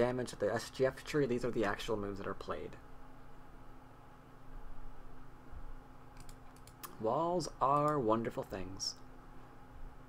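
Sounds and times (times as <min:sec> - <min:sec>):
faint steady hum: 0:00.0 - 0:10.0
computer clicks: 0:06.2 - 0:07.0.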